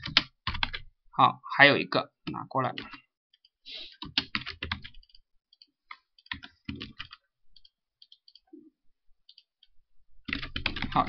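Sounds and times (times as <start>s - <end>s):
keyboard keys clicking: 2.8s - 8.5s, 10.3s - 11.0s.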